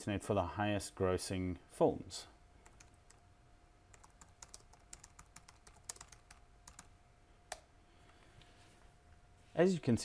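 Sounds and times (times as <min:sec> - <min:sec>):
computer keyboard typing: 0:02.6 - 0:03.2, 0:03.9 - 0:06.9.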